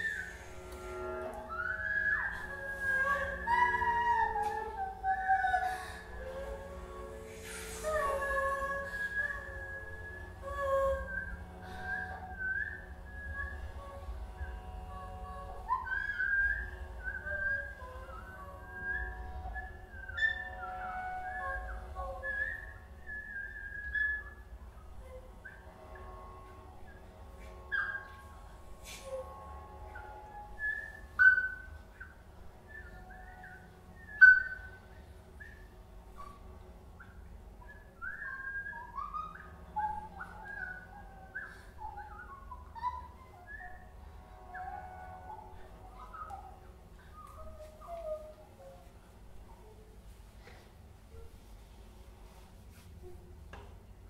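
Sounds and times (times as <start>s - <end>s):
whistle-like chirps and squeaks: 15.7s - 28.3s, 28.9s - 49.8s.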